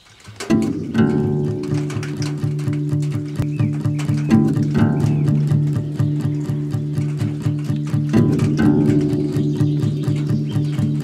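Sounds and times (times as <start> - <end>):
acoustic guitar low notes: 0.4 - 11.0.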